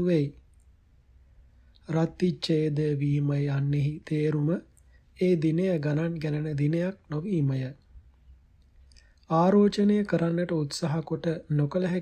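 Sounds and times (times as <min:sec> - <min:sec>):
man reading aloud: 0:00.0 - 0:00.5, 0:01.8 - 0:07.9, 0:08.9 - 0:12.0.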